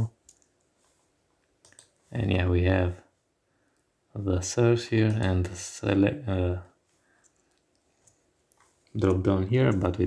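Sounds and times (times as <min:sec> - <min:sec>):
computer input clicks: 0:01.6 - 0:02.0.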